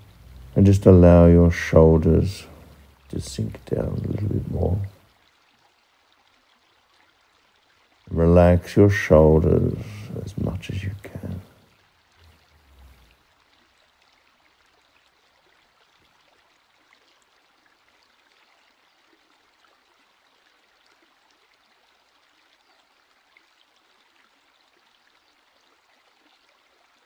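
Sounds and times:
faint steady hiss: 0.0 - 27.0.

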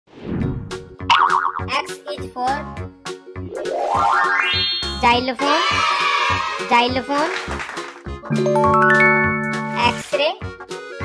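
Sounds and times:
warbling cartoon sound effect: 3.6 - 5.1
background music with beat: 7.8 - 11.0.

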